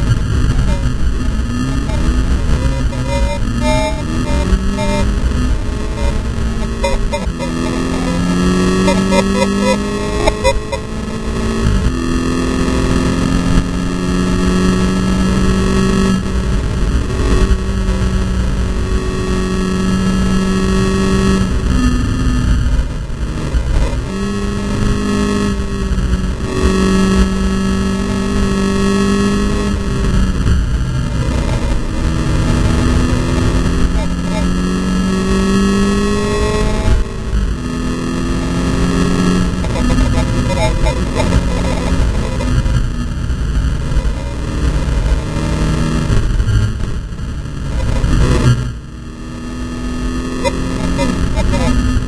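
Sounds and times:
race car engine running hard: 0:00.0 - 0:52.0
wind and road noise: 0:00.0 - 0:52.0.

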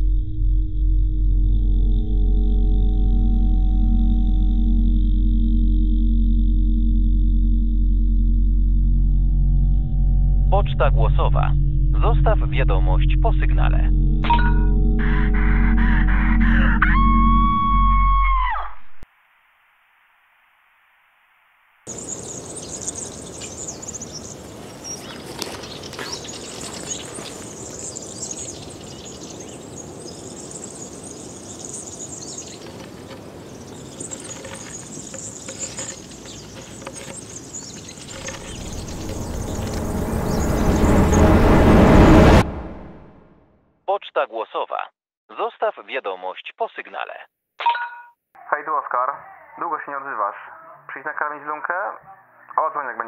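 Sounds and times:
low swell: 0:00.0 - 0:18.2, 0:38.1 - 0:43.3
low drone: 0:00.0 - 0:18.5, 0:38.0 - 0:43.3
electronic voicemail beep: 0:10.5 - 0:18.1
birds chirping: 0:15.0 - 0:18.9, 0:21.9 - 0:41.5.

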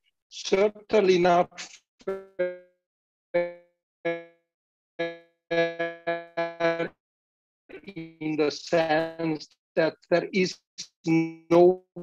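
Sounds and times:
short electronic keyboard notes: 0:05.0 - 0:06.9, 0:07.7 - 0:09.4.

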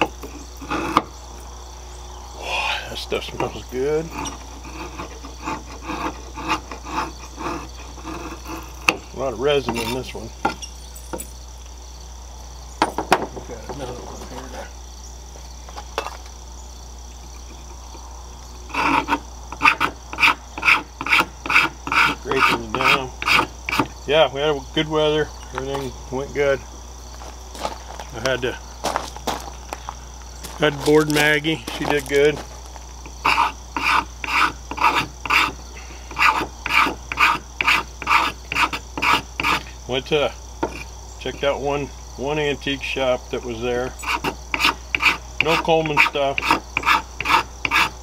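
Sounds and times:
knife scraping wood stick: 0:00.0 - 0:01.1, 0:03.3 - 0:10.8, 0:18.6 - 0:24.0, 0:33.0 - 0:39.8, 0:40.6 - 0:41.0, 0:43.9 - 0:48.0.

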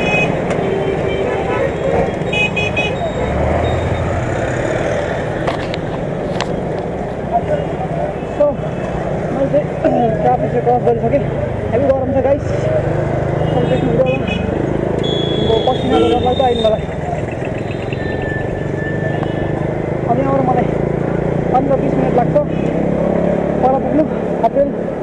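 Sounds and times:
motorcycle engines humming: 0:00.0 - 0:25.0
people's voices: 0:00.0 - 0:25.0
short high horn tone: 0:15.0 - 0:16.7.

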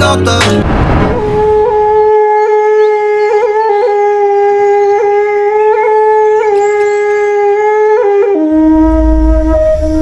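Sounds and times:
bamboo flute long note: 0:01.5 - 0:10.0.

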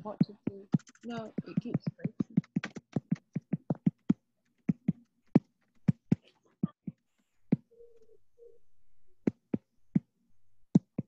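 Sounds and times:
stuttering voice on video call: 0:00.0 - 0:03.5.

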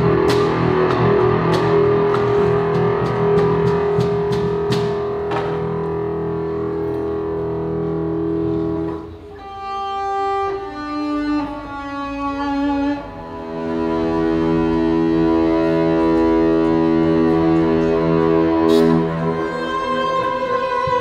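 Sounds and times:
sharp percussive strikes: 0:00.0 - 0:05.9
held musical drone: 0:00.0 - 0:21.0
sustained musical notes: 0:00.0 - 0:21.0.

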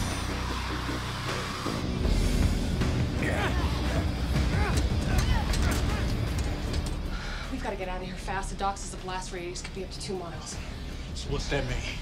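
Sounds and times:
film music: 0:00.0 - 0:12.0
falling vocal cries: 0:03.2 - 0:06.3.

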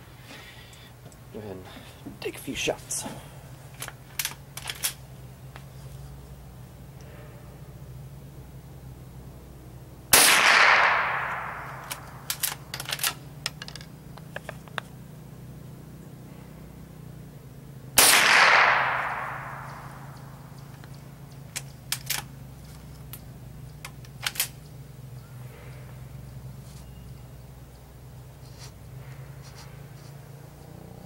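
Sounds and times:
rifle shots with echo: 0:10.1 - 0:12.3, 0:18.0 - 0:20.2.

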